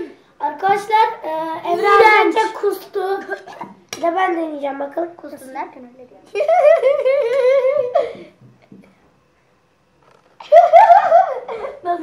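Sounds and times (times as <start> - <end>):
boy giggling: 6.3 - 8.4, 10.4 - 12.0.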